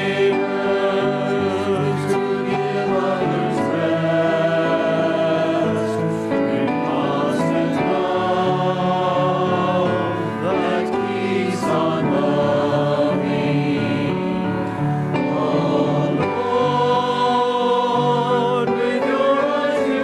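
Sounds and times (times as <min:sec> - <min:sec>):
choir singing sustained chords: 0:00.0 - 0:20.0.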